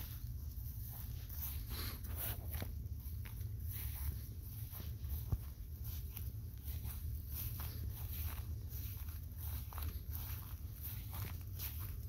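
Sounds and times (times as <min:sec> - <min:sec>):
footsteps through grass: 0:00.0 - 0:12.0
steady low rumble: 0:00.0 - 0:12.0.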